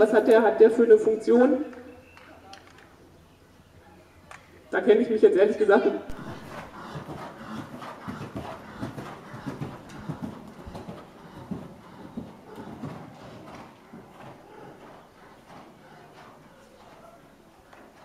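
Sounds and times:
horse hoofbeats on sand: 6.1s - 18.0s.

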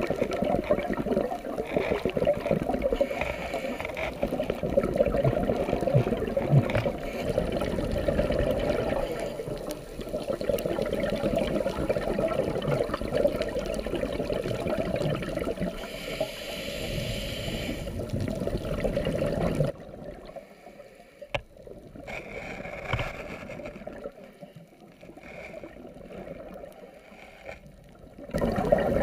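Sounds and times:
muffled underwater water noise: 0.0s - 29.0s.

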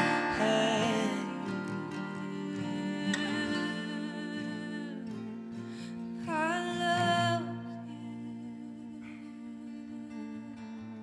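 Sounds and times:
acoustic guitar: 0.0s - 11.0s
woman singing slow song: 0.0s - 11.0s.

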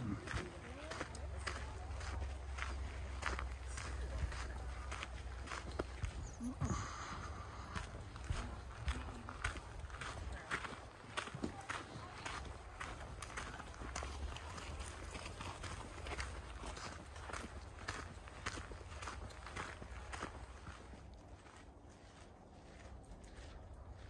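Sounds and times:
footsteps on dirt trail: 0.0s - 24.0s.

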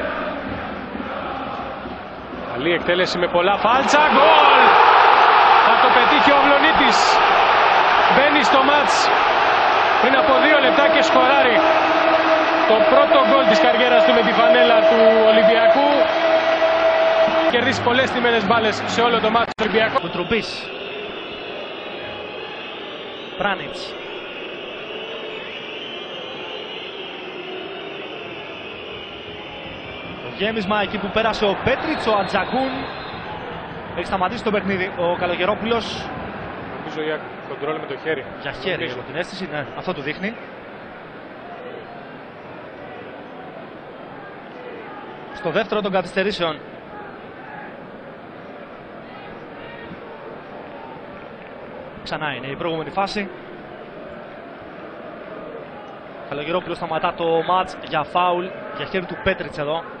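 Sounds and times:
stadium crowd chanting and singing: 0.0s - 45.6s, 46.5s - 60.0s.

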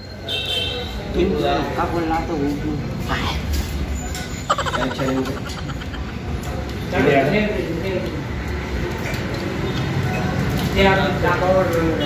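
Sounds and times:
man's pulsing laugh: 4.4s - 6.6s.

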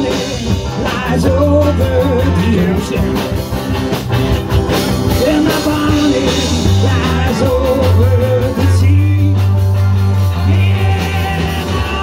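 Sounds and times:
bass line: 0.0s - 12.0s
drums: 0.0s - 12.0s
electric guitar: 0.0s - 12.0s.

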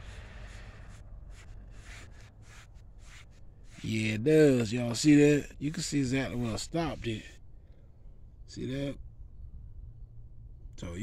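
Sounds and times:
foam pad wiping tire: 0.0s - 4.7s.

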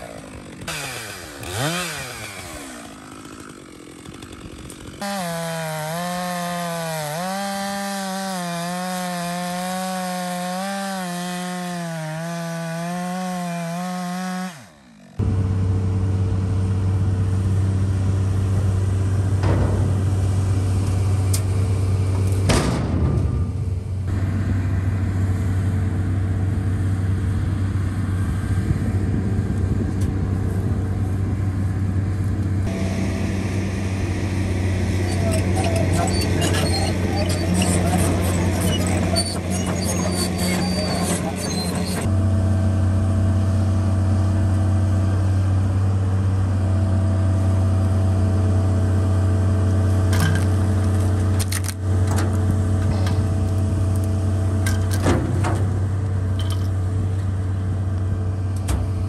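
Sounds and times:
chainsaw cutting log: 0.0s - 15.2s, 32.5s - 42.2s
excavator diesel engine running: 31.2s - 59.0s.

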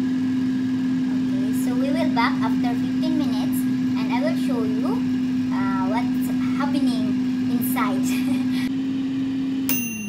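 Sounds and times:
air fryer fan humming: 0.0s - 10.0s
timer bell ding: 9.7s - 10.0s.

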